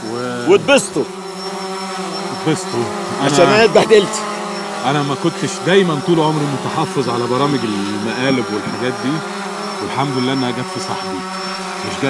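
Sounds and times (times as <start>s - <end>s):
buzzing hum with held tones: 0.0s - 12.0s.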